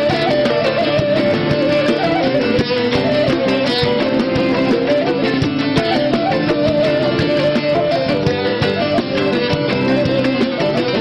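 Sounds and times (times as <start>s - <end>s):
plucked string instruments melody: 0.0s - 11.0s.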